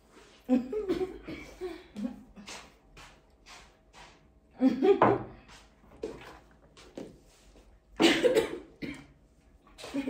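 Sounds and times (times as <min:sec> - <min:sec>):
person coughing: 0:08.0 - 0:09.2.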